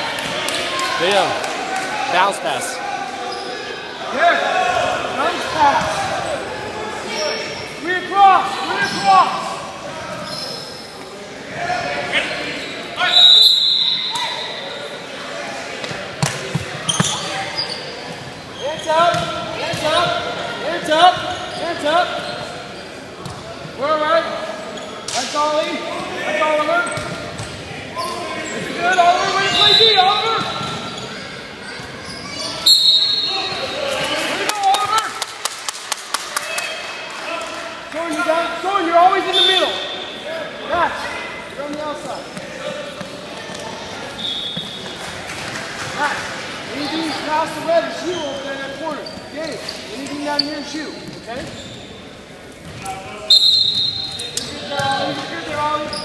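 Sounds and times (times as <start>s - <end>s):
referee's whistle blasts: 13.0s - 14.6s, 32.6s - 33.6s, 44.2s - 44.8s, 53.3s - 54.3s.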